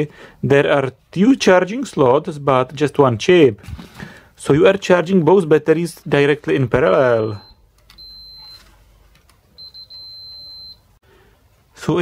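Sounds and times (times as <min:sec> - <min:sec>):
multimeter continuity beeps: 0:07.1 - 0:08.7, 0:09.6 - 0:10.9.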